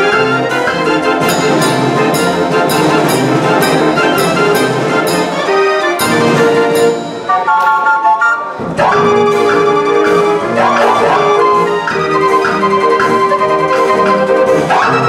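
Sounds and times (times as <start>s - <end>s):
street organ playing tune: 0.0s - 15.0s.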